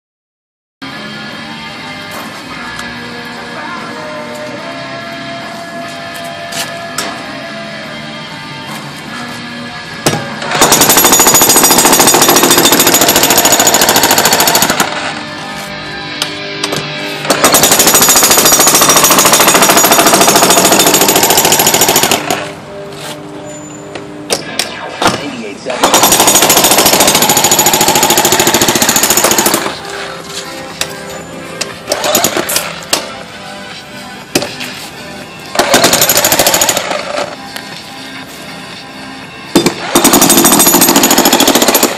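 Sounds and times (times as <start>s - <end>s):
demolition hammer chiselling concrete: 10.6s - 14.9s, 17.3s - 22.4s.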